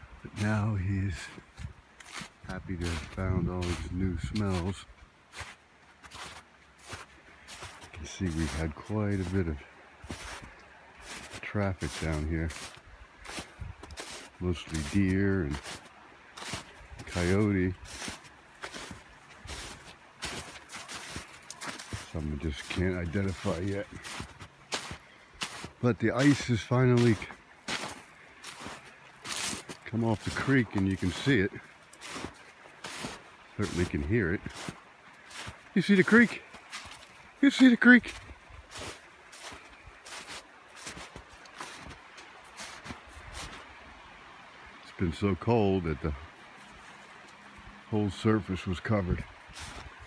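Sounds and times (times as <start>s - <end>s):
creek rushing: 0.0s - 50.0s
footsteps in snow: 0.3s - 44.1s, 46.5s - 50.0s.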